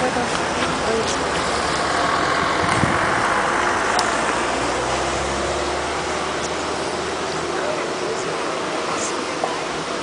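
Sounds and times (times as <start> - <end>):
low engine hum: 0.0 - 10.0
road traffic passing: 0.0 - 10.0.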